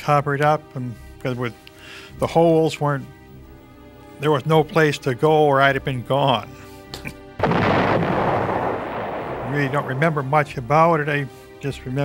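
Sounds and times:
explosion: 0:07.4 - 0:10.5
rushing rumble: 0:07.4 - 0:10.8.

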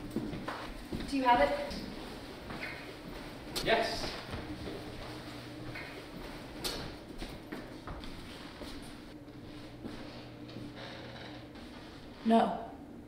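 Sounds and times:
footsteps and movement knocks: 0:00.0 - 0:12.2
low room hum: 0:00.0 - 0:13.0.

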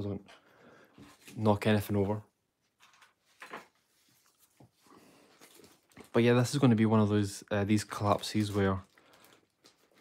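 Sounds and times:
paper rustling: 0:01.0 - 0:06.4.

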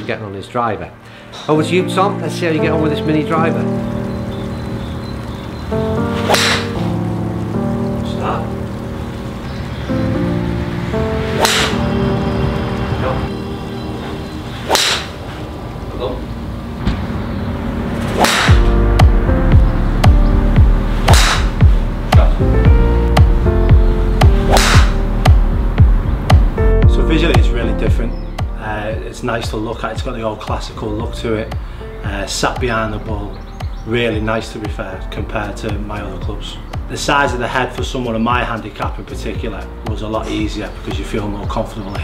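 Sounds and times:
background music: 0:00.0 - 0:42.0
golf club striking ball: 0:06.0 - 0:07.3, 0:11.2 - 0:12.0, 0:14.6 - 0:15.2, 0:18.0 - 0:19.4, 0:21.0 - 0:22.2, 0:24.2 - 0:25.3.

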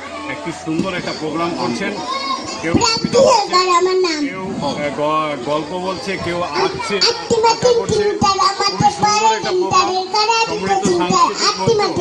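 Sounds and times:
man talking: 0:00.3 - 0:12.0.

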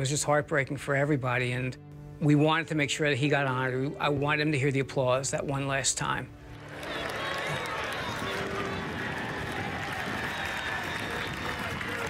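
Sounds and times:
crowd applauding and cheering: 0:06.4 - 0:12.0.

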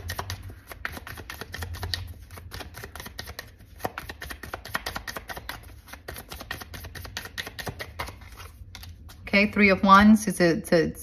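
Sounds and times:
cards being shuffled: 0:00.0 - 0:09.3
low steady hum: 0:00.0 - 0:11.0.

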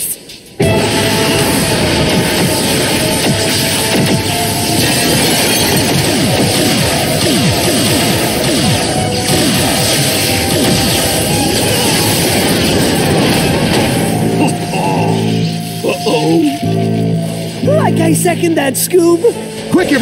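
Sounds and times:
dramatic orchestral score: 0:00.0 - 0:20.0
crackling blast effects: 0:00.6 - 0:20.0.

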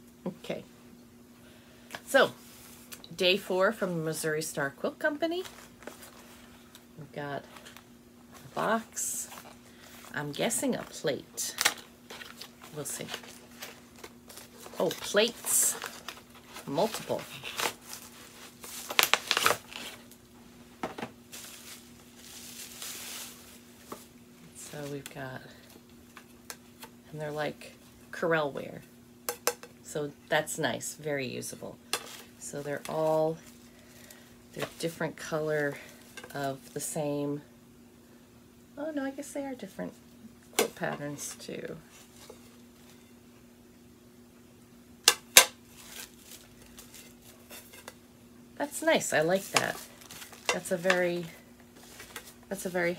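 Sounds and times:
packaging crinkling and rustling: 0:11.5 - 0:20.2, 0:21.2 - 0:26.3, 0:45.6 - 0:48.0, 0:49.2 - 0:52.9.

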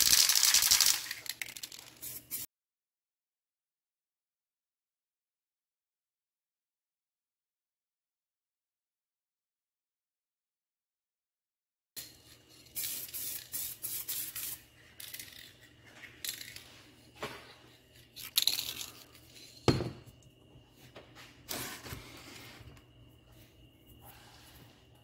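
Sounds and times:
spray paint can hissing: 0:00.0 - 0:02.5, 0:12.6 - 0:15.2.

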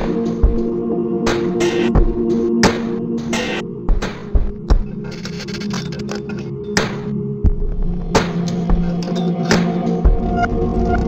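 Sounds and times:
low drone notes: 0:00.0 - 0:11.0.

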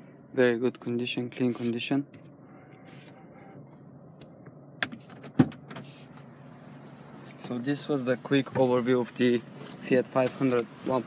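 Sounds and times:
faint car cabin hum: 0:00.0 - 0:11.0.

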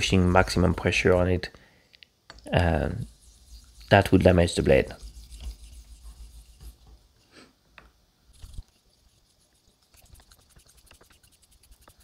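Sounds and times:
razor blade scraping on whetstone: 0:03.0 - 0:04.2, 0:04.8 - 0:06.8, 0:08.3 - 0:12.0.

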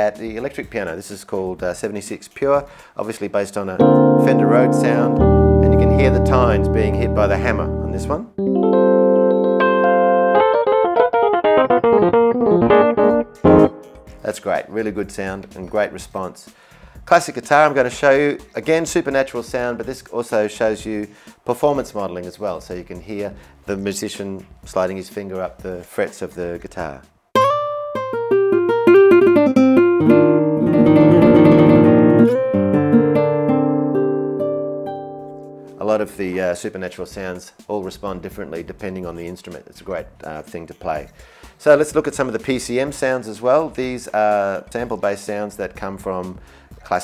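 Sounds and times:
electric piano chords and melody: 0:03.8 - 0:14.2, 0:27.4 - 0:35.7
synthesized acoustic guitar notes: 0:03.8 - 0:14.3, 0:27.4 - 0:36.2.

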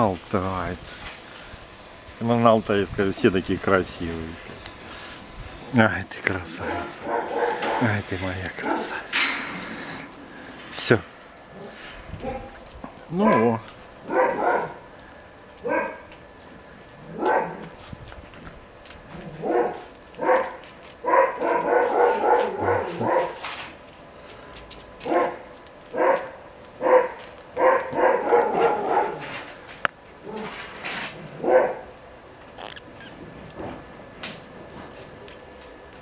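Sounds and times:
animal yelping calls: 0:32.6 - 0:33.2.

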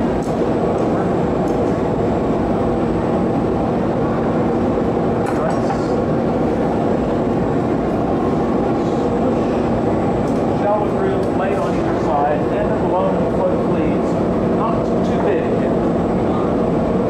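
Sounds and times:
gas furnace roaring: 0:00.0 - 0:17.0.

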